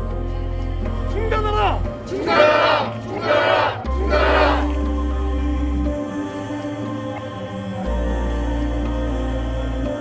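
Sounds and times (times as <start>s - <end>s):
group shouting in unison: 2.1s - 4.7s.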